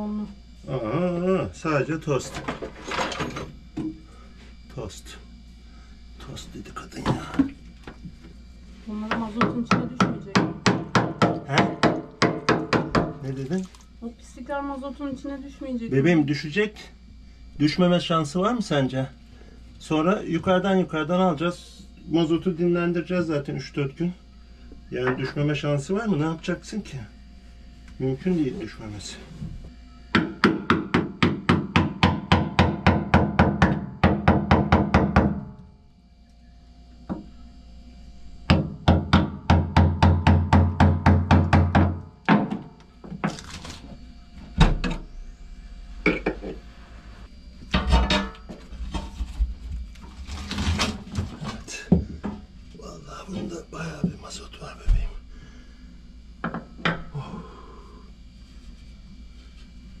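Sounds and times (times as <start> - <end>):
hammer striking steel: 47.7 - 48.4.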